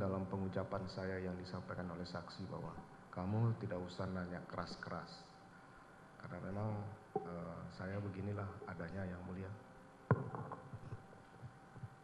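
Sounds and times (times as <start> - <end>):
faint steady hum: 0.0 - 12.0
microphone handling thump: 10.1 - 11.0
microphone handling knocks: 10.1 - 12.0.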